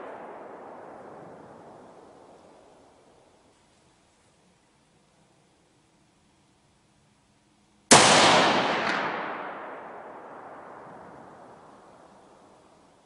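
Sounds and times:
rifle shot with echo: 0.0s - 3.0s, 7.9s - 12.7s.

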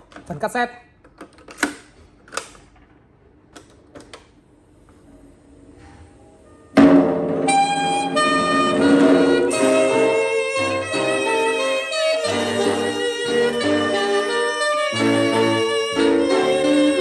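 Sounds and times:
music from tape speakers: 7.2s - 17.0s.

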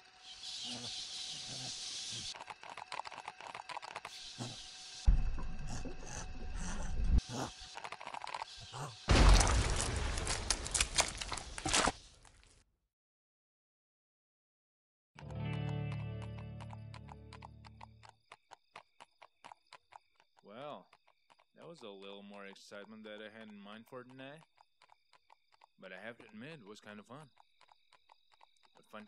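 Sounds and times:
cartoon rumble with grating rasp: 5.4s - 9.0s
horse hooves clip-clopping: 15.2s - 26.4s.

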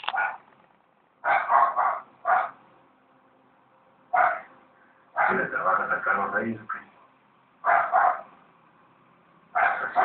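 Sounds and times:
dog barking: 0.1s - 0.4s, 1.2s - 2.6s, 4.1s - 4.5s, 5.1s - 5.5s, 7.6s - 8.3s, 9.5s - 10.0s.

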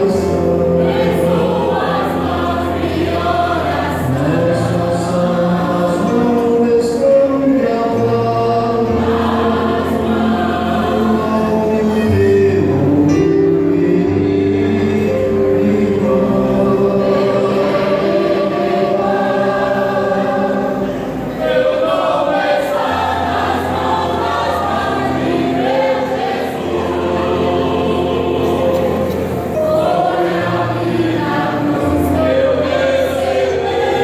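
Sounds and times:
mixed choir singing: 0.0s - 34.0s.

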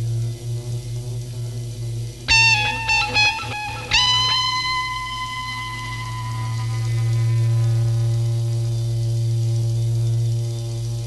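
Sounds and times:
rock band holding low chord: 2.3s - 8.3s.

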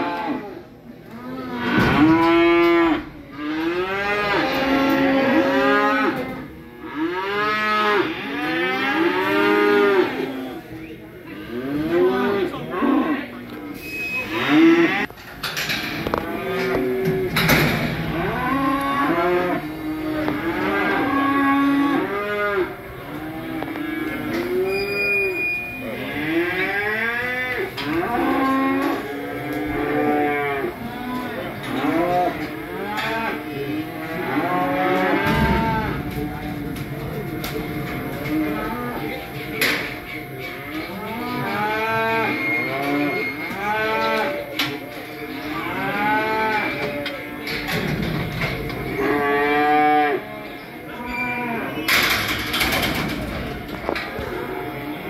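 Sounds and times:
cattle mooing and bawling: 16.1s - 24.8s.

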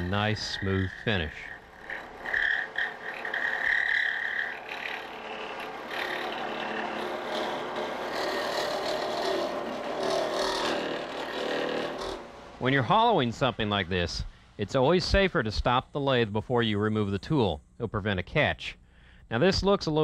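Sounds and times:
tool scraping wood hiss: 0.0s - 12.3s
wood lathe cutting whine: 0.0s - 12.7s.

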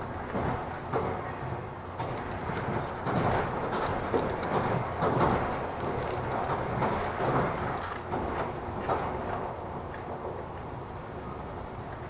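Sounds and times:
track clicks and knocks: 0.0s - 12.0s
train wheels rumbling on rails: 0.0s - 12.0s.

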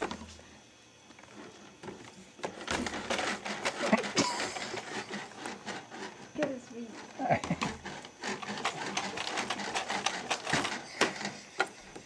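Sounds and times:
baby jumper clicking and rattling: 7.4s - 11.4s.

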